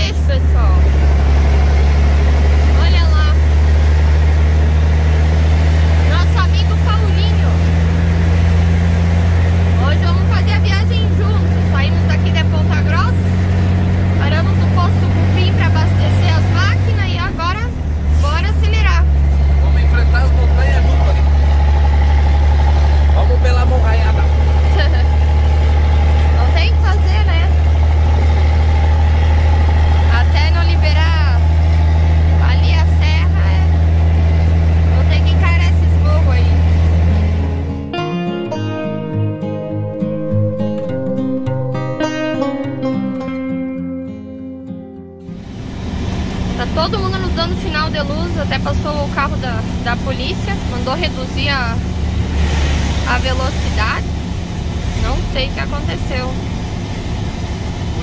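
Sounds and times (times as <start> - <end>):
diesel truck engine droning: 0.0 - 58.0.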